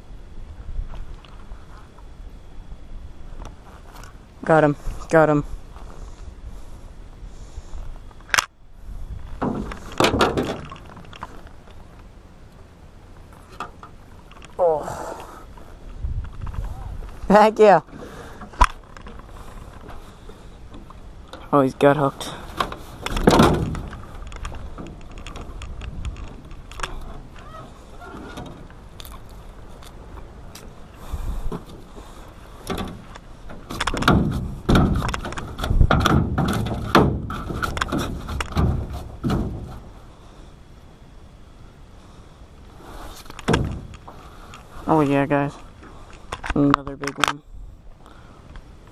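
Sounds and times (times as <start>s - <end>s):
low muffled rumble: 0.0s - 17.4s
gear knocking in aluminium boat: 31.0s - 39.8s.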